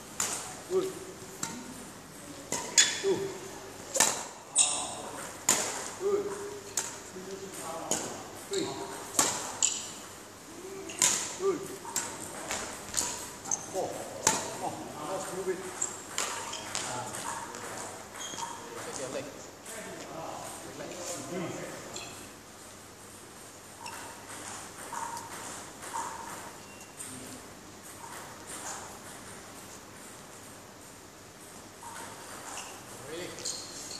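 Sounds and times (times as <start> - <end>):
sneaker squeaks on floor: 4.5 - 5.0, 8.5 - 10.0, 15.8 - 19.0, 23.8 - 27.1, 31.8 - 33.9.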